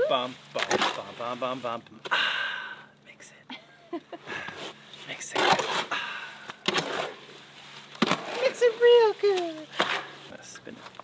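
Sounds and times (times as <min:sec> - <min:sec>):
shovel scraping wet concrete: 0:04.6 - 0:06.0, 0:06.7 - 0:07.3.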